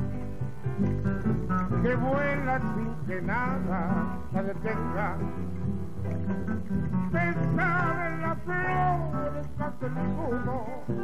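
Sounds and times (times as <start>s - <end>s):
guitar accompaniment: 0.0s - 11.0s
man singing: 1.6s - 11.0s.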